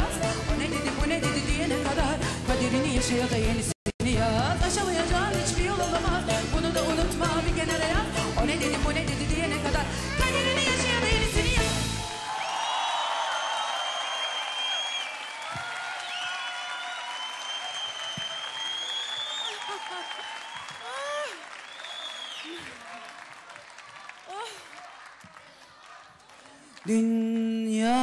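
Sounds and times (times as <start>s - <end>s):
cheering calls: 12.0s - 27.1s
audience applauding: 12.0s - 27.2s
shrill whistles: 12.3s - 22.6s.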